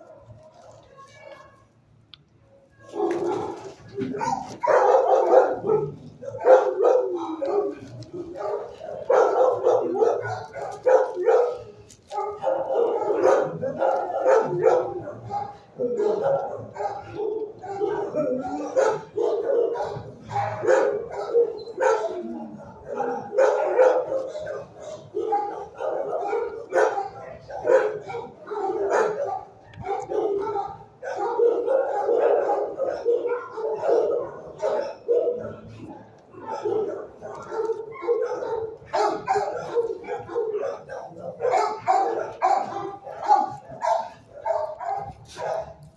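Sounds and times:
dogs barking: 2.8s - 45.9s.

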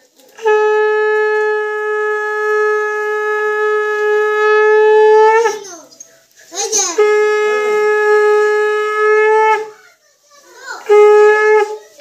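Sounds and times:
conch shell blown: 0.0s - 5.7s, 6.8s - 9.8s, 10.8s - 12.0s.

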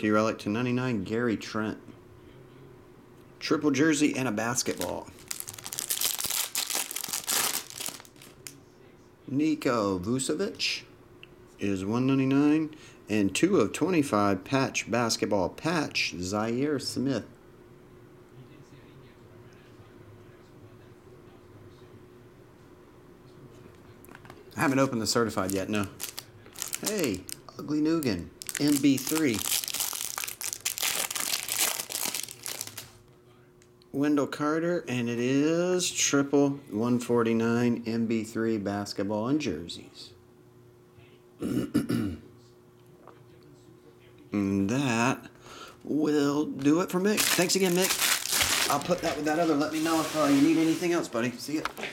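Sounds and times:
plastic sleeve crinkling: 4.5s - 8.5s, 24.6s - 33.0s, 47.1s - 51.9s.

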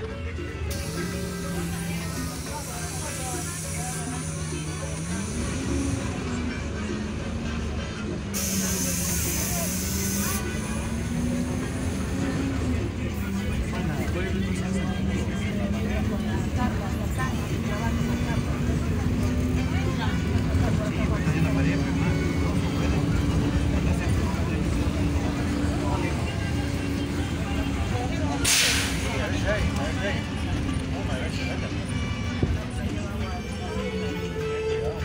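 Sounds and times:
bus engine and road rumble: 0.0s - 35.0s
compressed air hiss: 0.7s - 6.0s, 8.4s - 10.8s, 28.4s - 29.2s.

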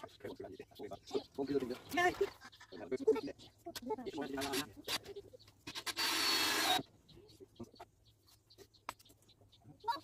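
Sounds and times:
cordless drill whine and grinding: 5.7s - 6.8s.

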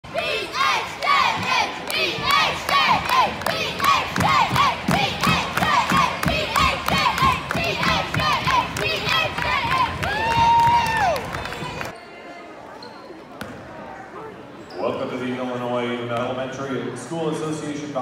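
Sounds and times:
crowd shouting and cheering: 0.0s - 12.6s.

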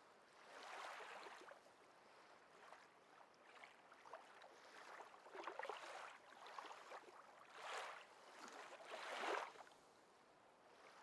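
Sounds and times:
water gently lapping: 0.2s - 11.0s
small water splashes: 2.5s - 9.7s.

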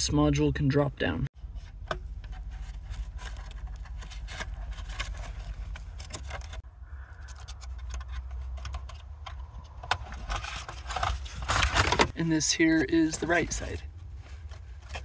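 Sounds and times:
plastic clicks and scrapes: 1.7s - 12.1s.

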